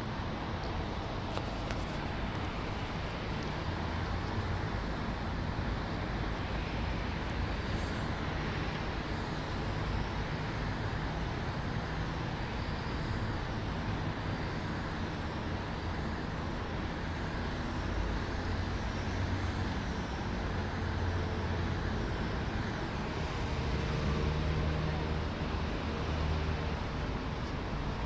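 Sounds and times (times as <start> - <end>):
distant road traffic rumble: 0.0 - 28.0.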